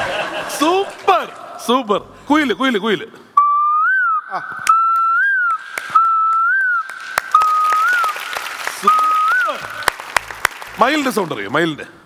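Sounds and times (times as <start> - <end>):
boy whistling: 3.4 - 9.8
scattered claps: 4.6 - 11.4.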